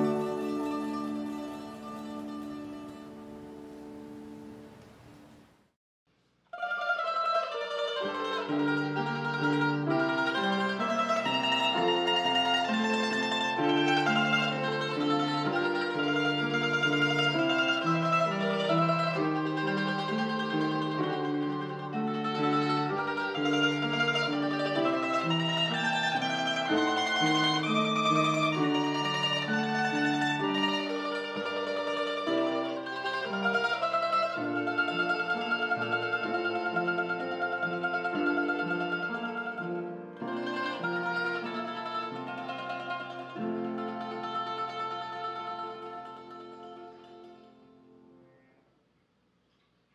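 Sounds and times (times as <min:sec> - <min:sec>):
mandolin music: 0:00.0 - 0:05.4, 0:06.5 - 0:48.6.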